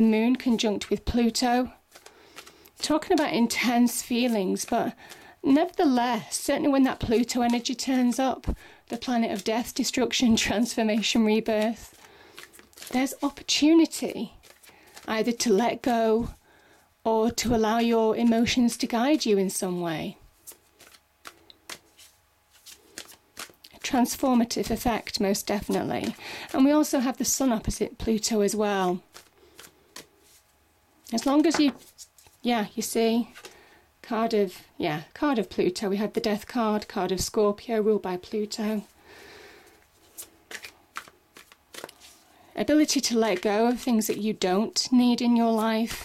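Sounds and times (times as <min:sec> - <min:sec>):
cards being shuffled: 0:00.4 - 0:05.8, 0:06.7 - 0:16.0, 0:20.4 - 0:26.7, 0:29.0 - 0:32.4, 0:39.8 - 0:42.2, 0:42.8 - 0:44.3.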